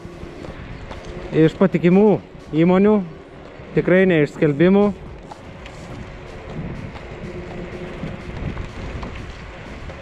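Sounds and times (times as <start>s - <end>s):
low rumble of scooter ride: 0.0s - 10.0s
wind buffeting microphone: 0.0s - 10.0s.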